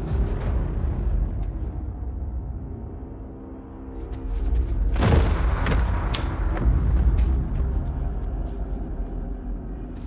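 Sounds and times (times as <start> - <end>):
dark low rumbling drone: 0.0 - 10.0.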